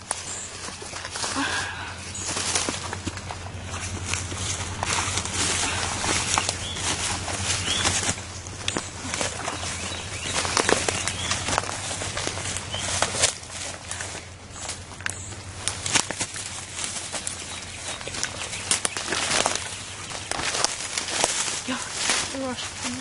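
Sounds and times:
footsteps through dense brush: 0:00.0 - 0:23.0
leaves rustling: 0:00.0 - 0:23.0
twigs snapping: 0:00.0 - 0:23.0.

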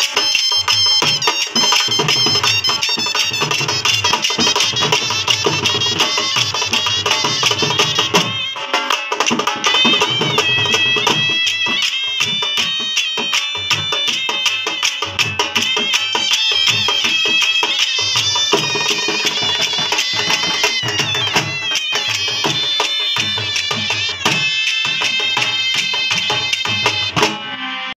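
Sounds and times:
dhol drums beating: 0:00.0 - 0:27.9
shehnai melody: 0:00.0 - 0:27.9.

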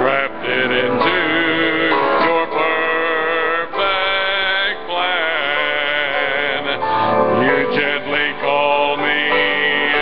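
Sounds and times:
music: 0:00.0 - 0:10.0
person singing worship song: 0:00.0 - 0:10.0.

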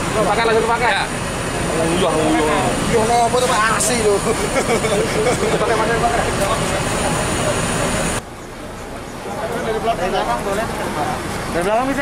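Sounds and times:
bus engine idling: 0:00.0 - 0:12.0
people talking: 0:00.0 - 0:12.0.

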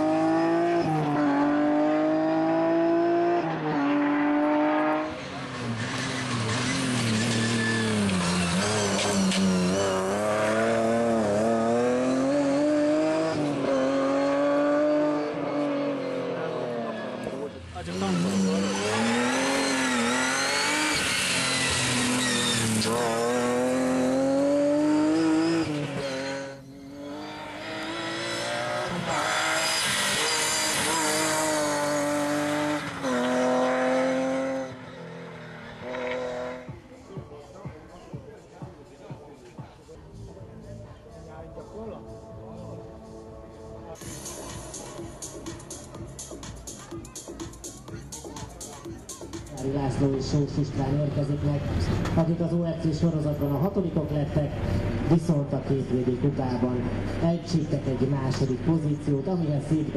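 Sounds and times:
car engine revving hard: 0:00.0 - 0:36.8.

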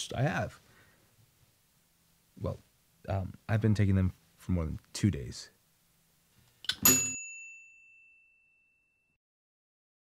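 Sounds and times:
bell-like ding: 0:06.8 - 0:09.2.

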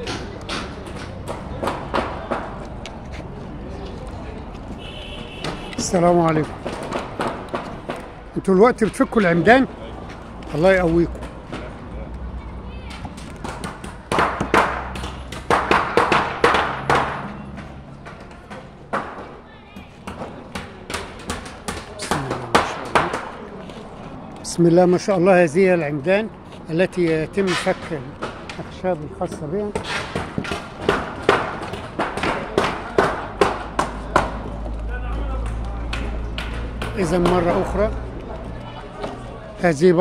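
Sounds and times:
wooden boards knocking and banging: 0:00.0 - 0:02.8, 0:05.4 - 0:09.6, 0:10.5 - 0:11.8, 0:12.9 - 0:23.4, 0:27.0 - 0:37.8.

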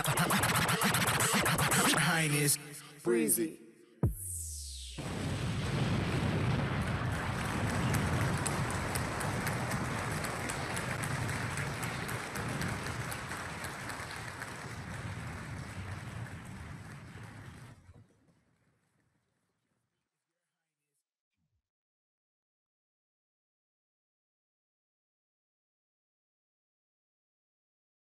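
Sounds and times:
dense noisy rumble: 0:05.0 - 0:13.9.

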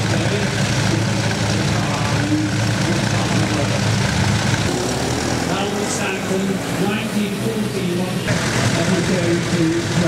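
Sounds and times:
car engine pulling away: 0:00.0 - 0:10.0.

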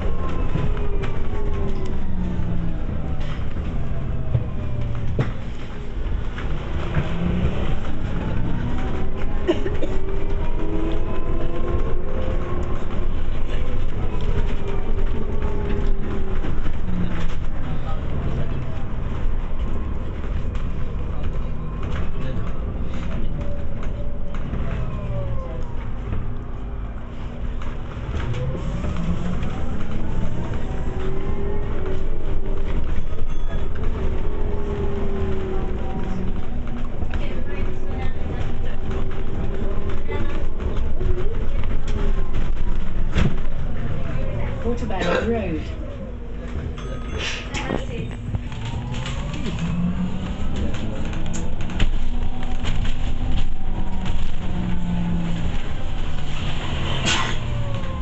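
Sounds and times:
bus engine running: 0:00.0 - 0:58.0
drivetrain whine: 0:00.0 - 0:58.0
road rumble: 0:00.0 - 0:58.0.

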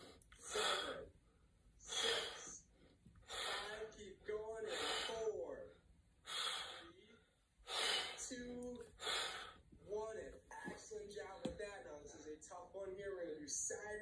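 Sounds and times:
man breathing heavily: 0:00.0 - 0:04.0, 0:04.6 - 0:05.5, 0:06.2 - 0:08.3, 0:08.9 - 0:09.8.

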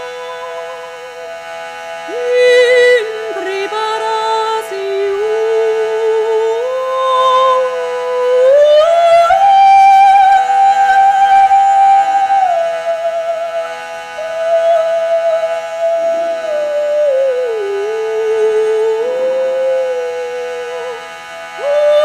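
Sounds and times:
woman singing a slow chant: 0:00.0 - 0:01.2, 0:02.1 - 0:22.0.

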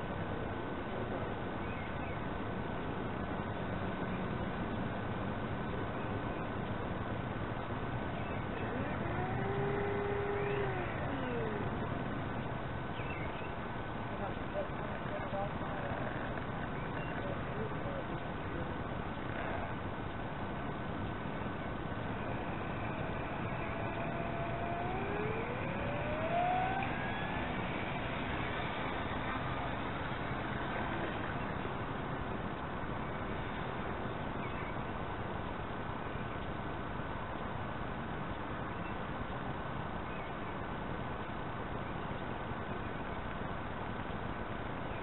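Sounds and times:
model plane motor whine: 0:08.0 - 0:12.6, 0:21.2 - 0:31.8
faint steady high tone: 0:08.0 - 0:19.8.

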